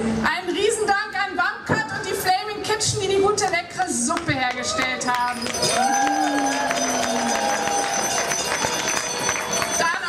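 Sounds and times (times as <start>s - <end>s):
crowd applauding: 4.5s - 10.0s
crowd cheering: 4.6s - 10.0s.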